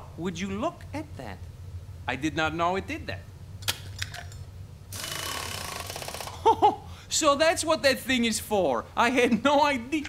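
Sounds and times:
buzzing mechanical rattle: 0:03.6 - 0:06.5.

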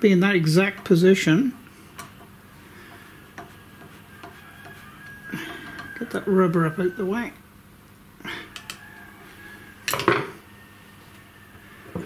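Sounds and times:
hand tools clicking: 0:08.5 - 0:08.8.

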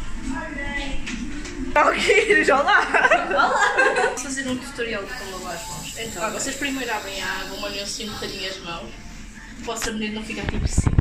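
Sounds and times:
people talking: 0:01.8 - 0:09.0, 0:09.6 - 0:11.0
people chuckling: 0:01.9 - 0:04.3.

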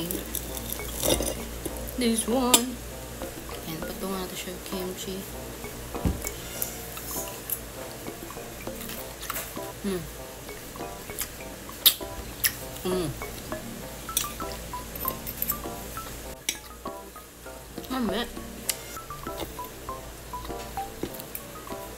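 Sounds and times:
background music: 0:00.0 - 0:21.9
cutlery clinking on plate: 0:00.2 - 0:01.5
person humming mmm: 0:12.7 - 0:13.4.

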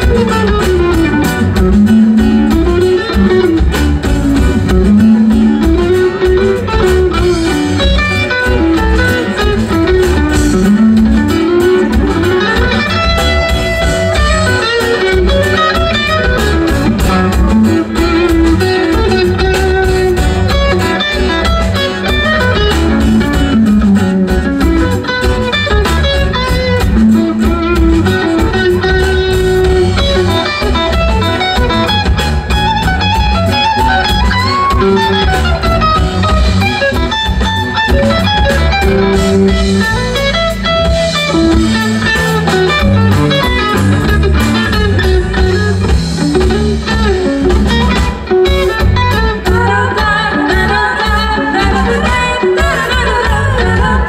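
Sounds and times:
bass guitar: 0:00.0 - 0:54.0
drums with a steady beat: 0:00.0 - 0:54.0
electric guitar: 0:00.0 - 0:54.0
laouto: 0:00.0 - 0:54.0.

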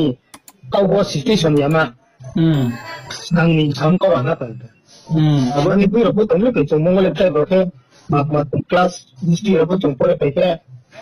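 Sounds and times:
man speaking: 0:00.0 - 0:10.7
sharp clicks: 0:00.3 - 0:00.6.

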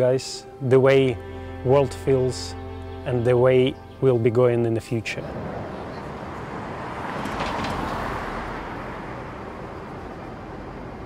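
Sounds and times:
car tyre and road noise: 0:05.2 - 0:11.0.

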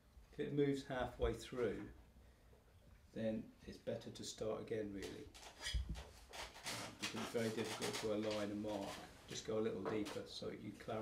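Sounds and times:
scratchy rub of wood: 0:05.4 - 0:09.4.

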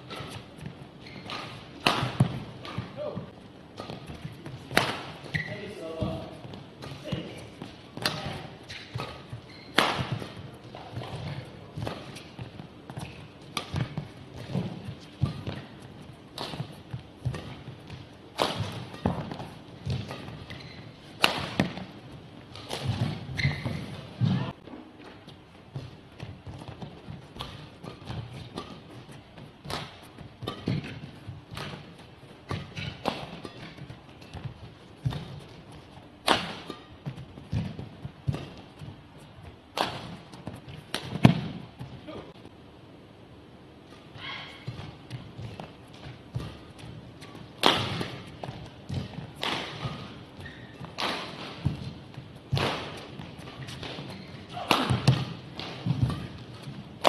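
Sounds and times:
racket striking shuttlecock: 0:00.0 - 0:24.5, 0:26.5 - 0:38.8, 0:39.7 - 0:41.6, 0:43.9 - 0:57.0.

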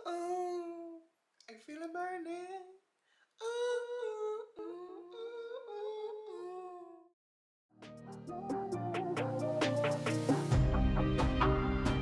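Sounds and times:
man singing wordlessly: 0:00.0 - 0:07.1, 0:08.0 - 0:10.4.

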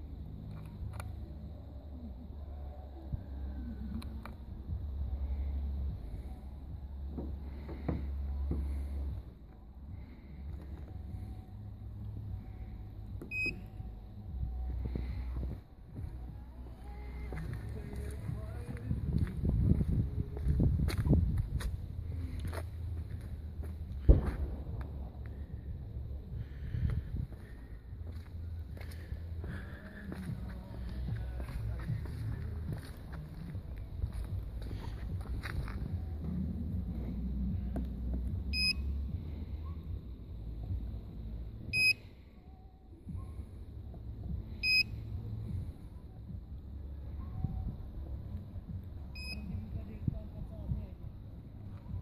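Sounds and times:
low steady rumble: 0:00.0 - 0:52.0.

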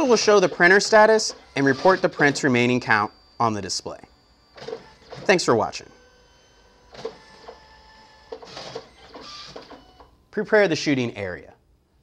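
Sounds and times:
printer whirring: 0:00.0 - 0:10.2
faint steady hum: 0:00.0 - 0:12.0.

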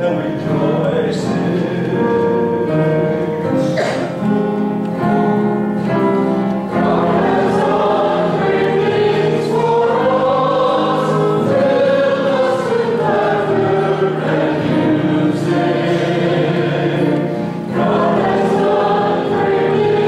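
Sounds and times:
church choir singing: 0:00.0 - 0:20.0
instrumental accompaniment: 0:00.0 - 0:20.0.

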